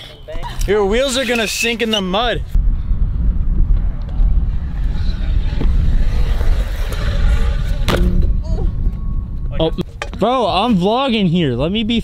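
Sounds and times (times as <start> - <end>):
wind buffeting microphone: 0.3 - 12.0.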